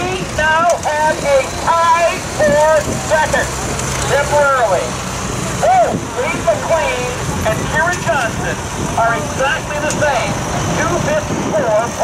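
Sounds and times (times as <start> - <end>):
announcer talking over loudspeaker: 0.0 - 12.0
tractor engine under load: 0.0 - 12.0.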